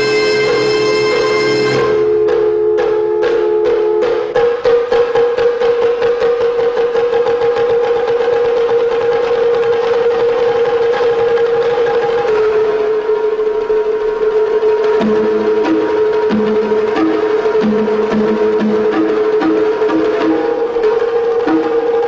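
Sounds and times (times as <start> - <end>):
held wind instrument note: 0.0 - 4.1
drum roll on tuned drums: 0.0 - 13.0, 14.3 - 22.0.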